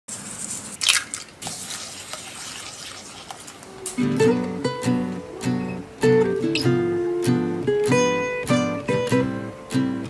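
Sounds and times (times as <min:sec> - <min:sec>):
sieve shaking with powder sifting: 0:00.1 - 0:04.1.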